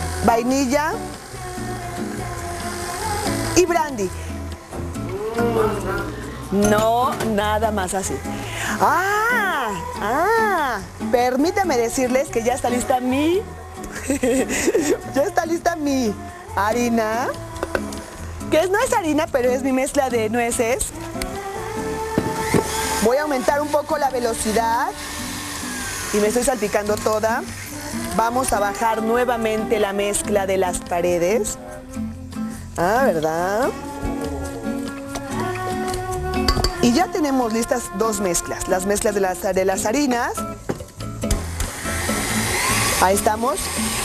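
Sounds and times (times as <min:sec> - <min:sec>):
background music: 0:00.0 - 0:44.0
electric stand mixer running: 0:22.2 - 0:27.8, 0:41.4 - 0:44.0
beater working mixture in bowl: 0:22.2 - 0:29.0, 0:41.4 - 0:44.0
stand mixer motor whirr: 0:41.6 - 0:44.0.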